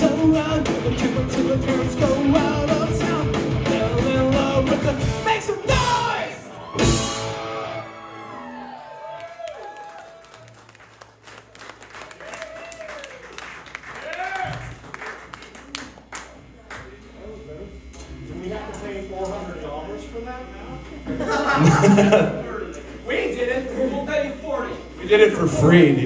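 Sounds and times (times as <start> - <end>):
live rock music: 0.0 - 8.5
crowd voices: 0.0 - 10.6, 15.5 - 26.0
crowd cheering: 5.5 - 16.8
crowd clapping: 8.0 - 17.0.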